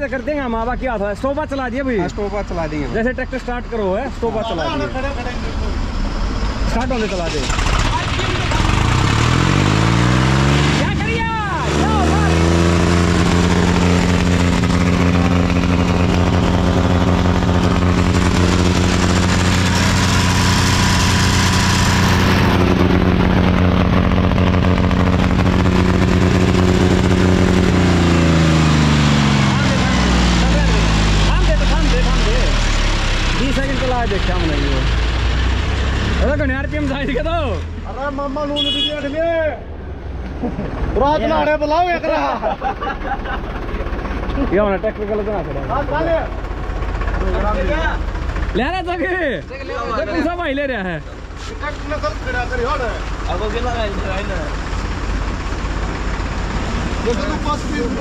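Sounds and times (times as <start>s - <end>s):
tractor diesel engine revving: 0.0s - 58.0s.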